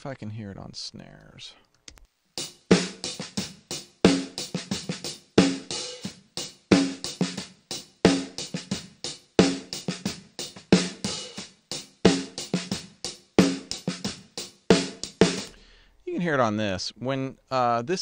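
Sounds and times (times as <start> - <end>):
quiet snare ghost notes: 8.1 - 15.6
snare drum backbeat hits: 13.4 - 15.5.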